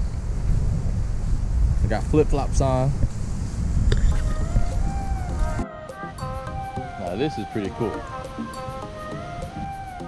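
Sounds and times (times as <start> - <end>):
wind buffeting microphone: 0.0 - 10.0
background music with steady beat: 4.2 - 10.0.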